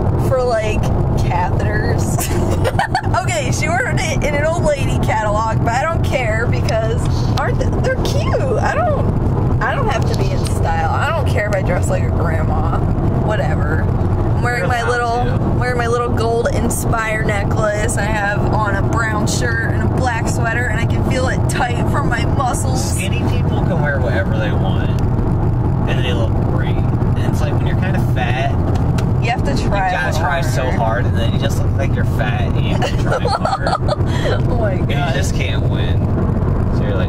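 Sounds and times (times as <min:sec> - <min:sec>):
car road and engine rumble: 0:00.0 - 0:37.0
people talking: 0:00.2 - 0:25.0, 0:25.9 - 0:28.6, 0:29.2 - 0:36.0, 0:36.7 - 0:37.0.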